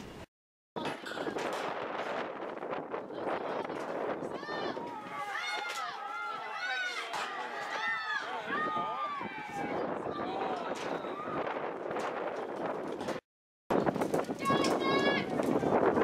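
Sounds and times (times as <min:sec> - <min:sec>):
spectators shouting and cheering: 0:03.2 - 0:11.8.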